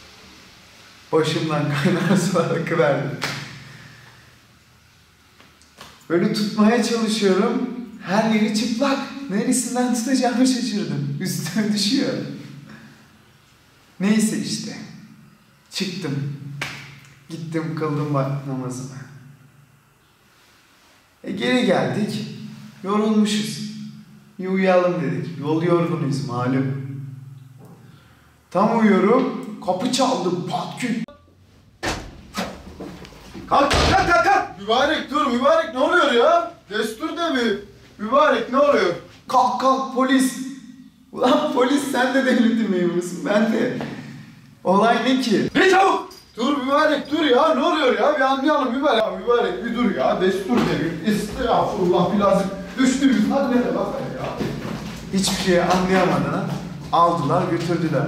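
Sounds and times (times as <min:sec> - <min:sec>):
bangs on a door: 0:31.8 - 0:32.8, 0:33.7 - 0:34.3
door bursting open: 0:31.8 - 0:34.5.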